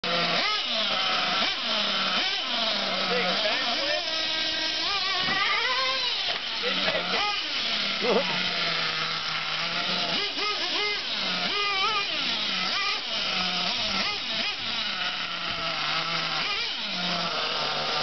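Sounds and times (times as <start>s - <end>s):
small nitro engine revving: 0.0s - 18.0s.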